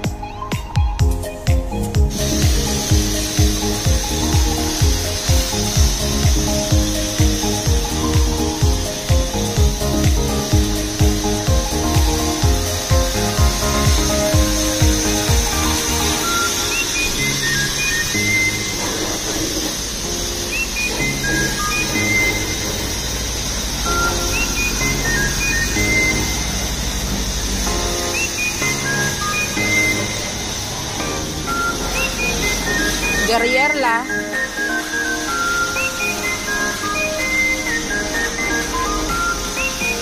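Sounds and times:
background music with beat: 0:00.0 - 0:40.0
pressure washer spraying water: 0:00.0 - 0:40.0.

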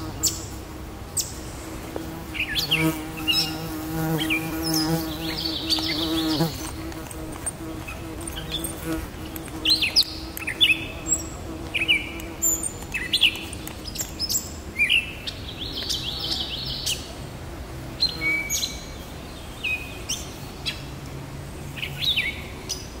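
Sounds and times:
catbird singing: 0:02.3 - 0:06.9.

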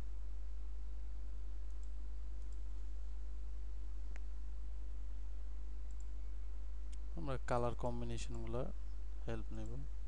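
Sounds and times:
low electrical hum: 0:00.0 - 0:10.0
computer mouse clicks: 0:01.6 - 0:02.8, 0:05.8 - 0:06.2.

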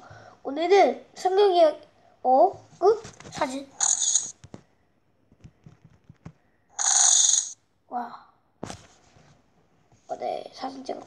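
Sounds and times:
camera shutter sound effect: 0:03.8 - 0:04.4, 0:06.8 - 0:07.6.

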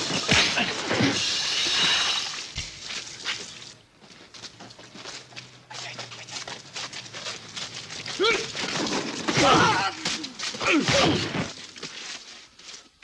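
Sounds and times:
fistfight scuffle: 0:07.1 - 0:12.3.

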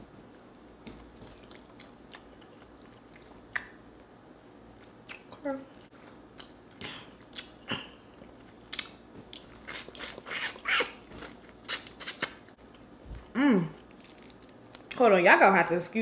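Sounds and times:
person humming mm: 0:13.3 - 0:13.8.

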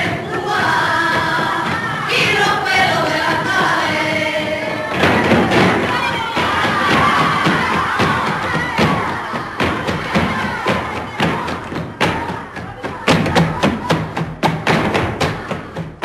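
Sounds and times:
women shouting and cheering: 0:00.0 - 0:16.0.

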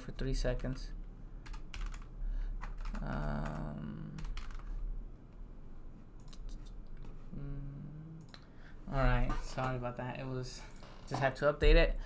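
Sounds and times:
person humming: 0:07.3 - 0:08.3.

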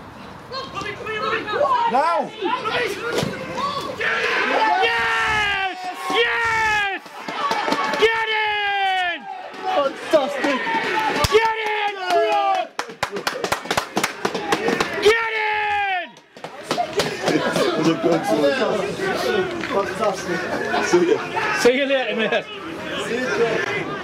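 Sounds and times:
men shouting and cheering: 0:00.8 - 0:24.0
hand clapping: 0:11.1 - 0:15.0.

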